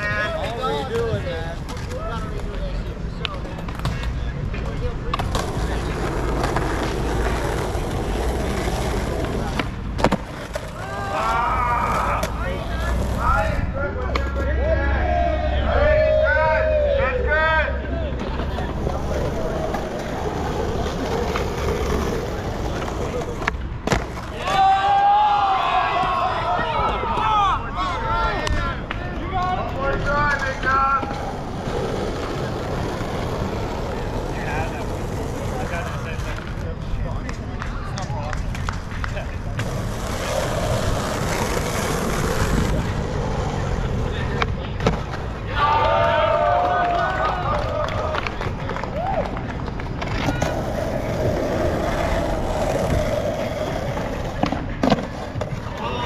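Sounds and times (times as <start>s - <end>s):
skateboards popping and landing: 0.0s - 14.5s, 18.2s - 27.4s, 28.3s - 56.0s
skateboard wheels rolling on asphalt: 0.0s - 56.0s
onlookers calling out: 10.6s - 20.1s, 24.3s - 33.0s, 45.4s - 49.4s.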